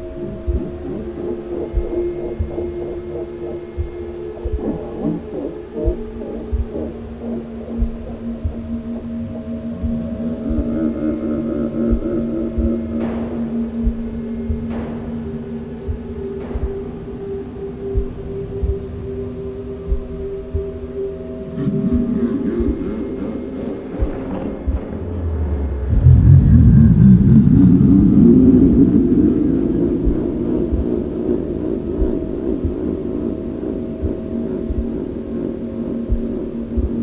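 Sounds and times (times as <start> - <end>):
low thumps: 0.0 - 11.0, 11.6 - 19.1, 21.5 - 29.0
eerie low drone: 0.0 - 37.0.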